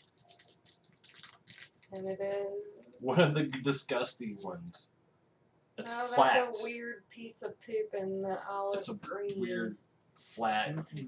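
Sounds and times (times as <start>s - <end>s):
toy packaging crinkling: 0.0s - 3.6s.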